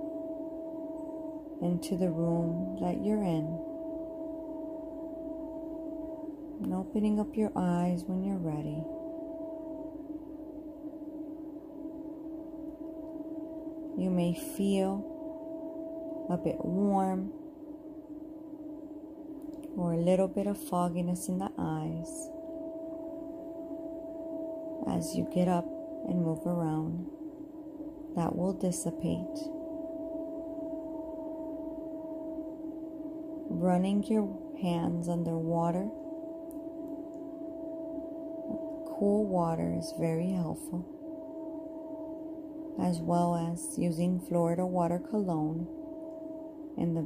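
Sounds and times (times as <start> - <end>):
ambient meditation drone: 0.0 - 47.0.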